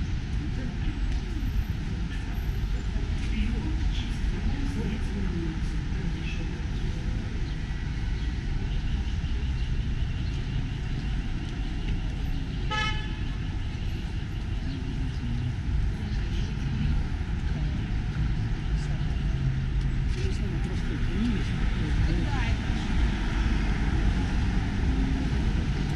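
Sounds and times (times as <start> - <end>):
city street traffic: 0.0 - 25.9
car horn toot: 12.7 - 13.3.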